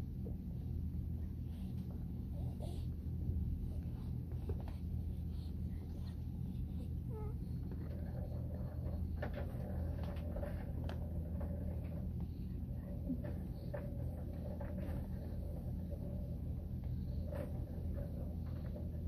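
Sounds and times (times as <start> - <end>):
cat purring: 0.9 - 19.0.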